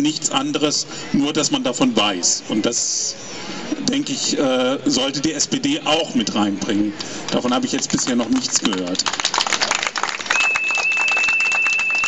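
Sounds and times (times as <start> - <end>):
background noise: 0.0 - 12.0
microphone feedback whistle: 10.3 - 12.0.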